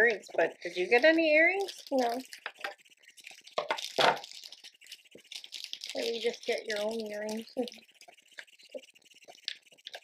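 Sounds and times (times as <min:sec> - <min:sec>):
tissue paper crinkling: 0:01.6 - 0:08.5.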